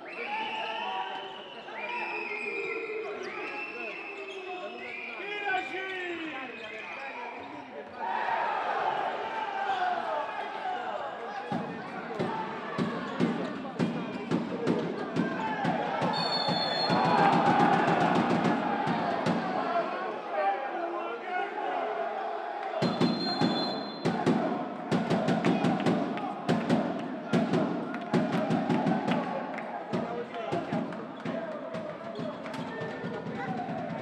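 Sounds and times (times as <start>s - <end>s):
referee whistle blasts: 0.0s - 7.3s, 16.0s - 17.5s, 22.8s - 24.2s
crowd noise: 0.0s - 34.0s
fans drumming: 11.5s - 19.7s, 22.8s - 32.2s.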